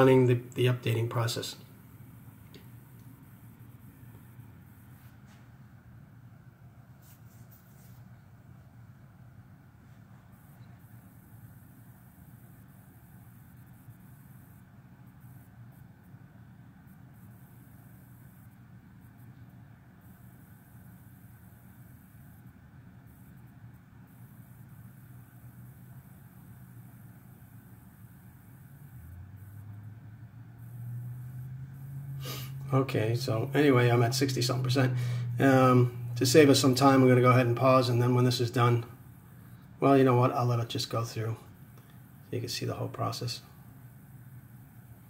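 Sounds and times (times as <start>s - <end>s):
low hum with hiss: 0.0s - 45.0s
deeper hum: 29.0s - 41.4s.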